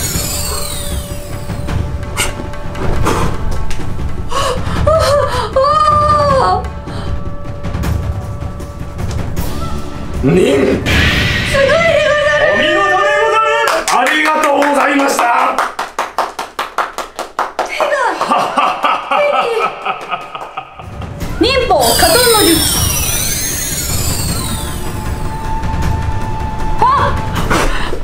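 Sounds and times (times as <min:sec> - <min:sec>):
rapid hand claps: 0:13.7 - 0:18.9, 0:19.7 - 0:20.8.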